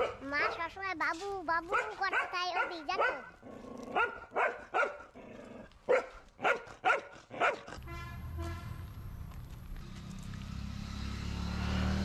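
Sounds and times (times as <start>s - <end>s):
dog barking: 0.0s - 0.7s, 1.7s - 3.3s, 3.9s - 5.1s, 5.9s - 7.8s.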